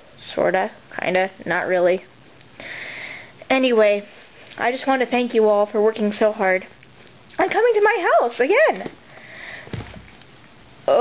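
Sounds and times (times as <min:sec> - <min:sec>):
soft bump: 0:09.7 - 0:10.2.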